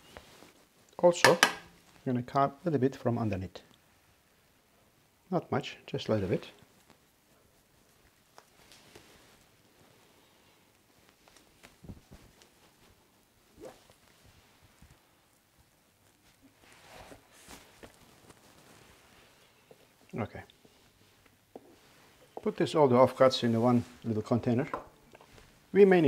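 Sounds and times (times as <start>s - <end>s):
gloved hands rustling: 6.1s - 26.0s.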